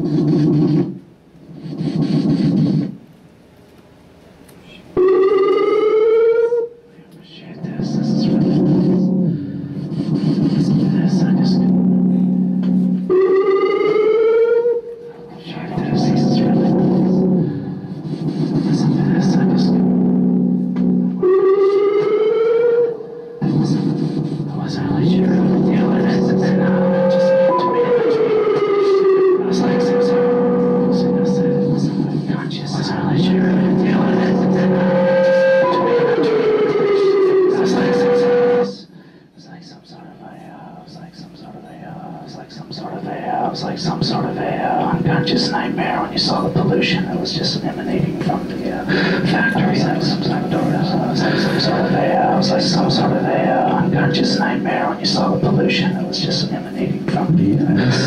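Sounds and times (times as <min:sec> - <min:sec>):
voice through effects with delay: 0:07.2 - 0:38.9, 0:39.8 - 0:58.0
sustained low drone: 0:07.6 - 0:13.4, 0:15.1 - 0:21.8, 0:23.4 - 0:38.8.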